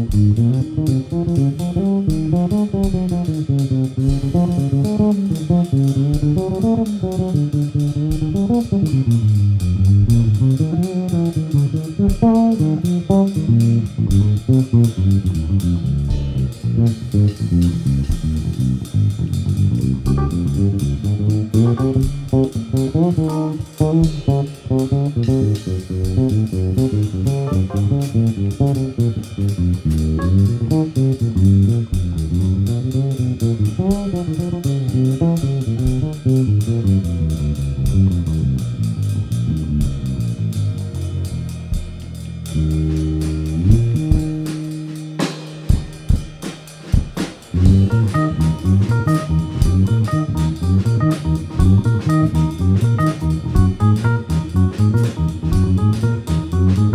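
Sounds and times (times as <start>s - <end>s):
electric bass guitar melody: 0.0s - 45.8s, 47.5s - 56.9s
drums on cymbals: 0.0s - 56.9s.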